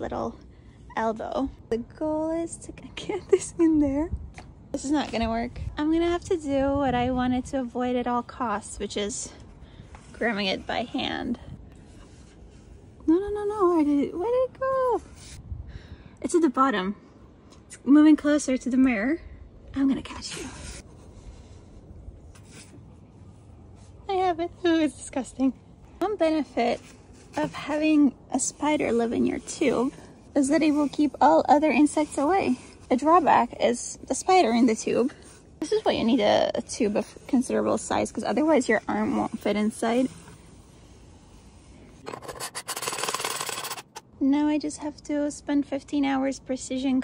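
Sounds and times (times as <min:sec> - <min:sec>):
arm rubbing inside a tube: 0:26.1 - 0:44.0.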